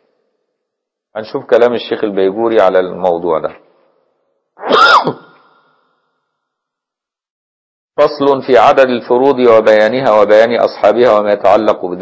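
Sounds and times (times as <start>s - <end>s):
person sneezing: 4.6s - 5.6s.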